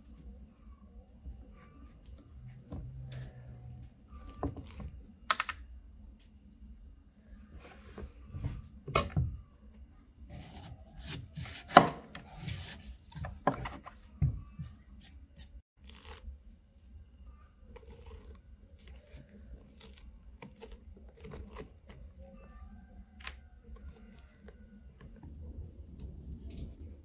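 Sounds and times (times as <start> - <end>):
hands scraping pumpkin pulp: 15.8 - 16.3, 17.6 - 22.1.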